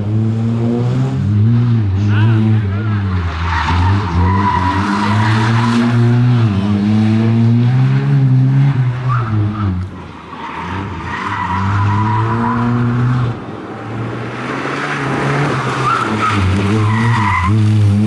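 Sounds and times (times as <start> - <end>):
rally car engine revving: 0.0 - 18.0
tyres squealing: 15.6 - 17.8.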